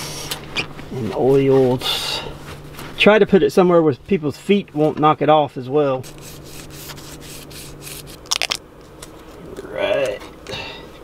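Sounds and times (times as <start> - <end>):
cloth wiping a surface: 6.0 - 8.2.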